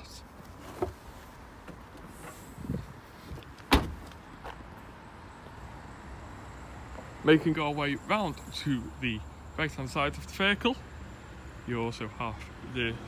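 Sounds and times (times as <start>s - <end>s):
car tailgate slamming: 3.7s - 4.1s.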